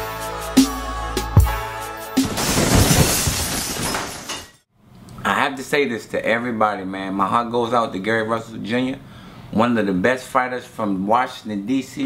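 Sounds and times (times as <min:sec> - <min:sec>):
crash sound effect: 0:02.2 - 0:04.5.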